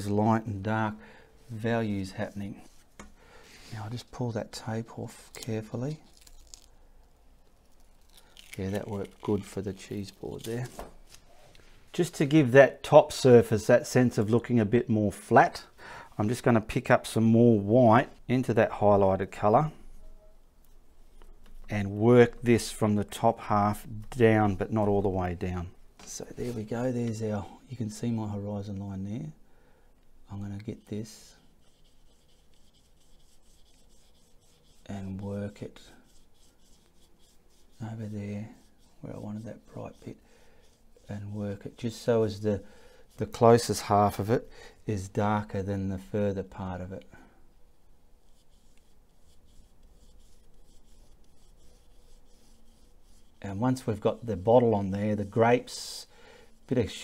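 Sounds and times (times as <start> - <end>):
masking tape being peeled: 5.3 - 6.8, 7.5 - 11.2
brush rubbing paint on canvas: 7.7 - 10.8, 30.7 - 44.4, 48.2 - 57.0.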